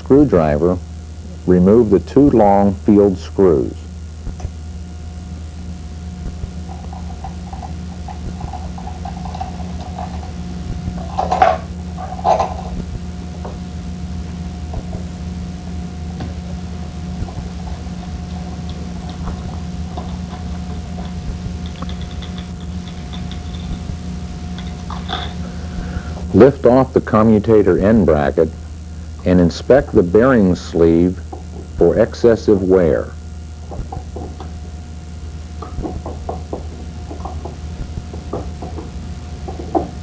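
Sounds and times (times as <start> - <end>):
low hum: 0.0 - 40.0.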